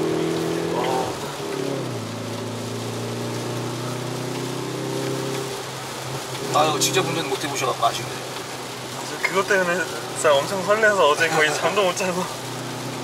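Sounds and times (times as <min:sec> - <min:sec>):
car engine from inside cabin: 0:00.0 - 0:13.0
rain: 0:00.0 - 0:13.0
wet tyre noise: 0:00.0 - 0:13.0.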